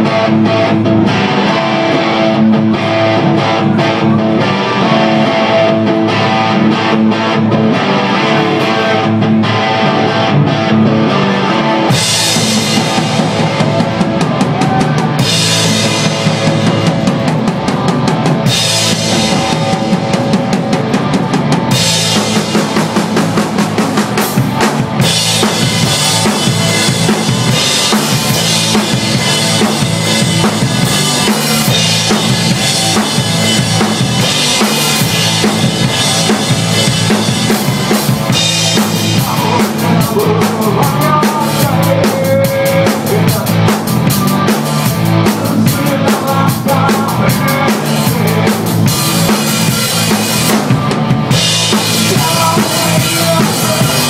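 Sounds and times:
live rock band playing: 0.0 - 54.0.

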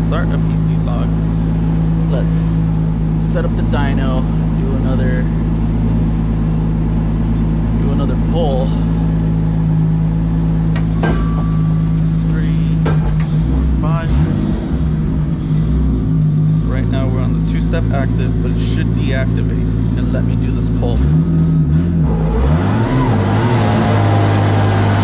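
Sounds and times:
car engine idling: 0.0 - 23.1.

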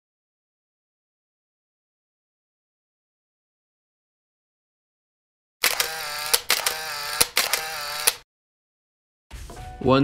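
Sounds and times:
sharp clicks: 5.6 - 8.2.

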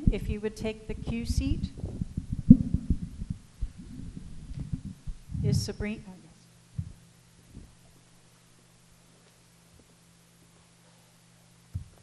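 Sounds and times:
soft low thumps: 0.0 - 6.0, 6.7 - 7.8, 11.7 - 12.0
faint steady hum: 0.0 - 12.0
low rumble: 0.8 - 6.0.

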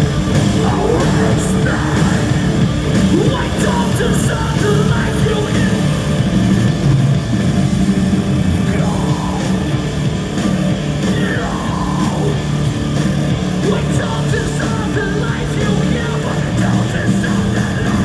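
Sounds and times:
metalcore band playing live: 0.0 - 18.0.

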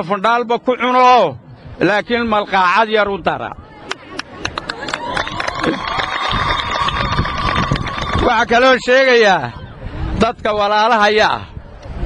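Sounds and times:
wind rumble on microphone: 1.2 - 12.0.

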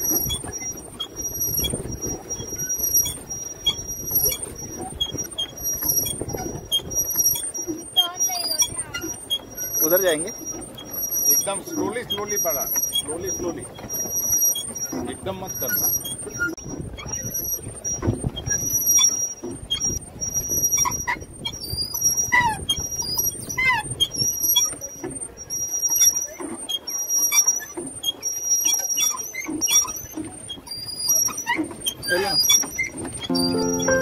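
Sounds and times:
boat parts squeaking: 0.0 - 34.0
low rumble of wind and water: 0.0 - 34.0.

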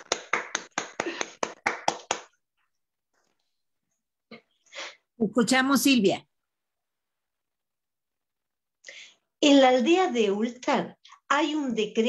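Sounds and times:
hand claps in applause: 0.0 - 2.4.

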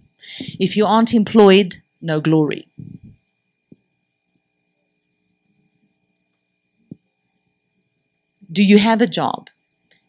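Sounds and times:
thin high-pitched hum: 0.0 - 10.0.

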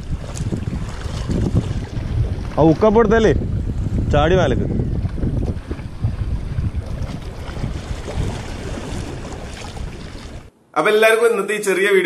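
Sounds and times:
wind buffeting microphone: 0.0 - 10.5
small waves washing against rocks: 5.6 - 10.5.

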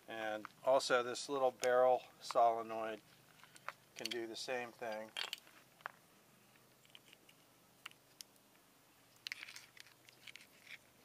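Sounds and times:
small clicks and scrapes: 3.0 - 4.2, 4.8 - 11.0.

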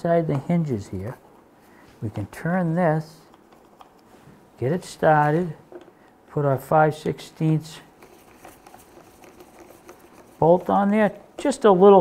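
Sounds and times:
nut driver ticking and scraping: 3.2 - 4.1, 7.0 - 11.6.

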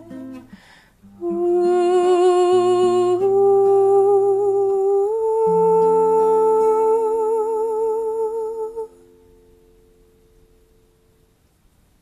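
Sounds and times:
woman singing with vibrato: 0.0 - 9.2
acoustic guitar: 0.0 - 12.0.

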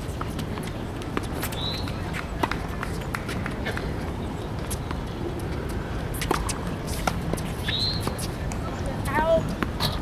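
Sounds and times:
tennis shoes scuffing on court: 0.0 - 10.0.

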